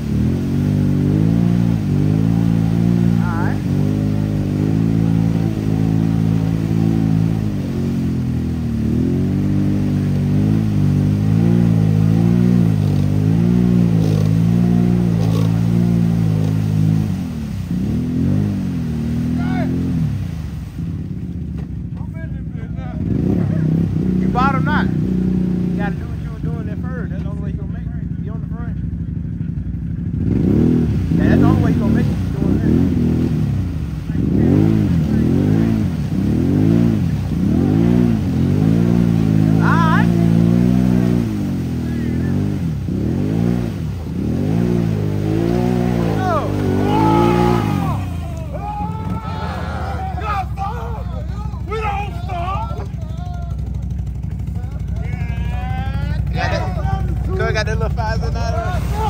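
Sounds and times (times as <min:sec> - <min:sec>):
quad engine revving: 0:00.0 - 0:59.0.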